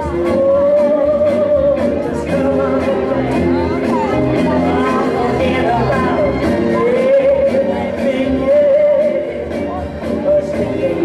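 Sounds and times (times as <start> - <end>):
soul music over sound system: 0.0 - 11.0.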